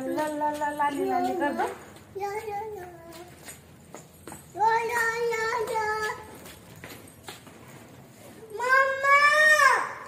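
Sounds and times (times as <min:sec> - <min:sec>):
toddler footsteps on tiled floor: 0:00.0 - 0:09.2.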